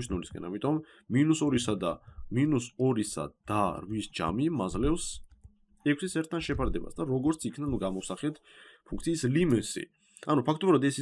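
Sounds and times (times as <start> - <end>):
man narrating: 0.0 - 5.3, 5.9 - 11.0.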